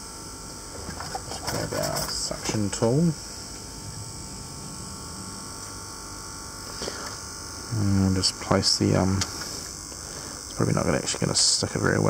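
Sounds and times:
low electrical hum: 0.0s - 12.0s
steady hiss: 0.0s - 12.0s.

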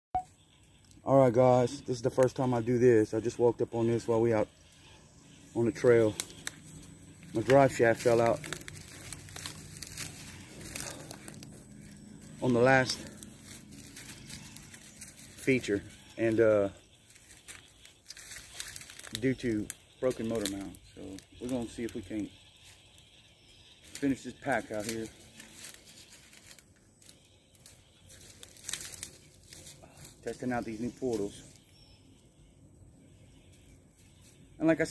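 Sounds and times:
crackling and rustling: 5.8s - 16.1s, 17.0s - 23.1s, 23.8s - 30.2s
faint rustling and crackling: 24.8s - 30.1s.

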